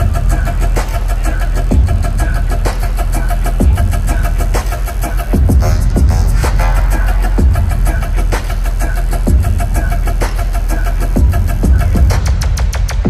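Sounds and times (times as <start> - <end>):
loud electronic bass music: 0.0 - 13.0.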